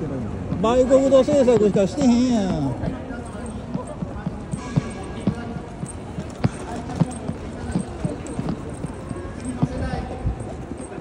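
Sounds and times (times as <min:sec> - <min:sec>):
hubbub of voices: 0:00.0 - 0:11.0
footsteps on stone paving: 0:00.2 - 0:11.0.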